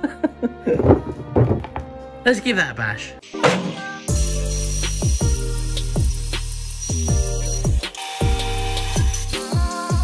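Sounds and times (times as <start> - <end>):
background music: 0.0 - 10.0
dull knocks on wooden workbench: 0.8 - 2.0.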